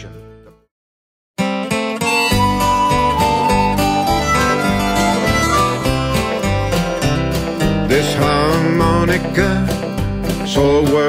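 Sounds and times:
bass: 0.0s - 0.7s, 1.4s - 11.0s
acoustic guitar: 1.4s - 11.0s
harmonica melody: 2.0s - 7.8s.

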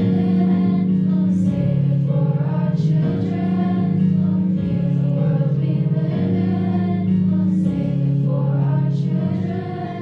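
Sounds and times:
girls' choir singing: 0.0s - 10.0s
held low accompaniment notes: 0.0s - 10.0s.

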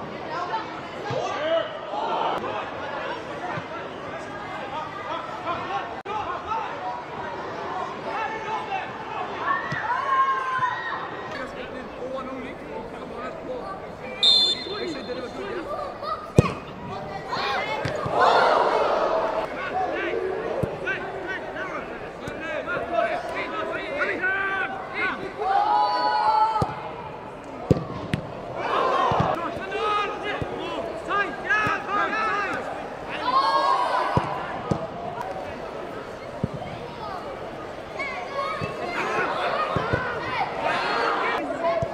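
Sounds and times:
players shouting: 8.0s - 41.9s
referee's whistle blast: 14.2s - 15.4s.

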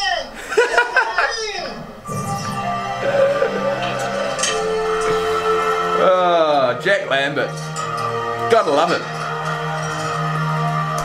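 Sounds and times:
sustained musical chord: 2.1s - 7.2s.

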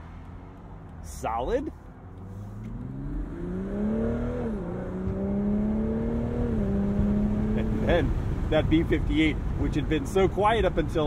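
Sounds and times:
car engine accelerating with upshifts: 0.0s - 9.6s.

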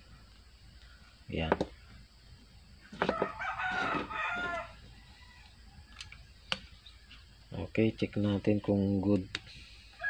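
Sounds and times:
rooster crowing: 3.0s - 6.3s.

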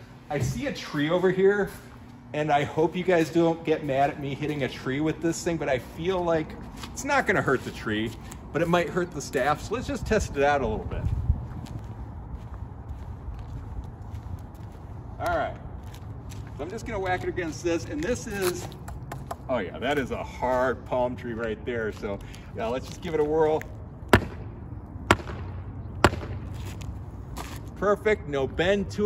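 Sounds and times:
steady low rumble: 0.0s - 29.0s
footsteps on asphalt: 0.5s - 28.1s.

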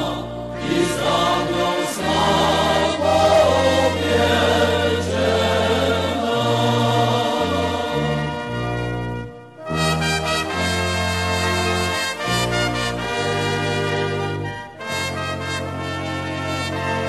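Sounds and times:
choir singing with accompaniment: 0.0s - 9.7s.

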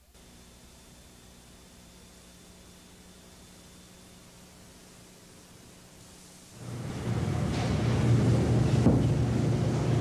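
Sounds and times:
machine hum and rumble: 0.0s - 10.0s.

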